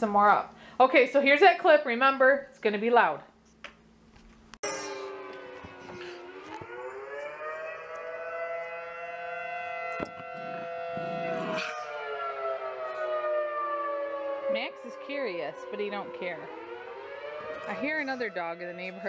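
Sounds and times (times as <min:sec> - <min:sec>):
warning siren wailing: 0:04.6 - 0:19.0.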